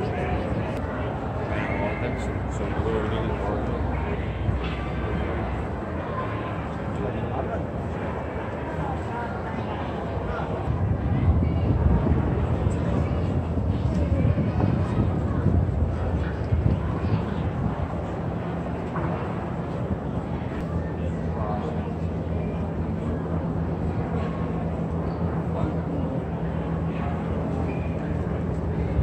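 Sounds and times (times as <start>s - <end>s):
indistinct crowd chatter: 0.0s - 29.0s
steady low rumble: 0.0s - 29.0s.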